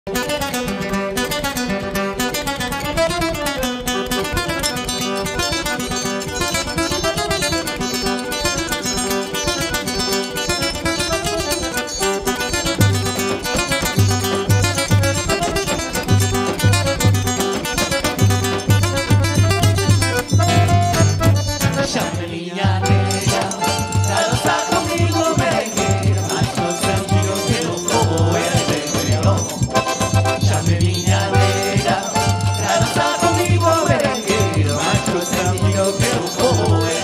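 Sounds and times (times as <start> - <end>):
acoustic guitar: 0.1 - 37.0
button accordion: 0.1 - 37.0
bass drum beats: 18.2 - 22.0.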